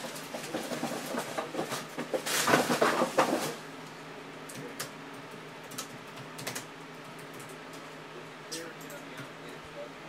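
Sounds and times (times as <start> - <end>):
faint steady hum: 0.0 - 10.0
typing on computer keyboard: 5.6 - 7.8.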